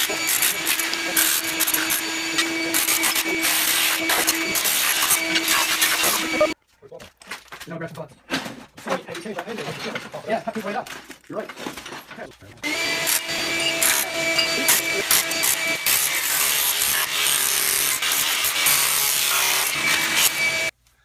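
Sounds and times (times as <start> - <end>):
vacuum running: 0.0 - 6.6, 12.6 - 15.8, 19.6 - 20.7.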